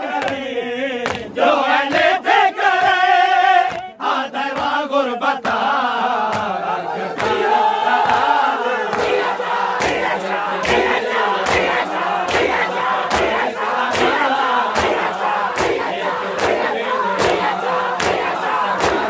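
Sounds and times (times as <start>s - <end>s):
crowd chanting: 0.0s - 19.0s
hands slapping chests: 1.0s - 2.1s, 3.6s - 4.8s, 6.3s - 19.0s.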